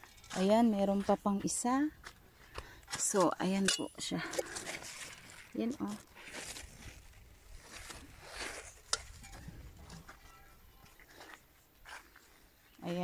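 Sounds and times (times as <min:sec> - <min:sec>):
leaves rustling: 0:04.3 - 0:10.1.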